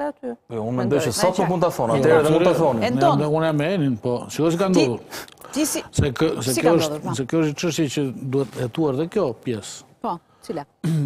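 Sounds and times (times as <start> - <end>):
man speaking: 0.5 - 5.2, 5.8 - 9.9.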